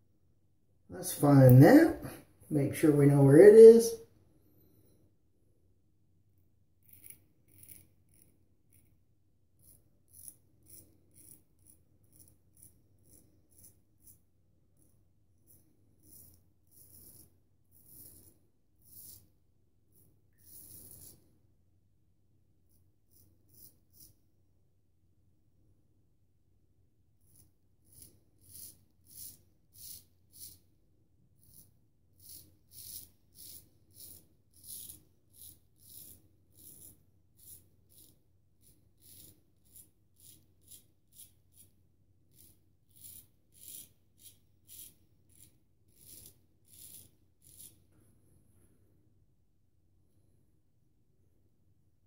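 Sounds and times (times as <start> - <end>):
straight razor scraping stubble: 6.8 - 9.0, 9.6 - 14.2.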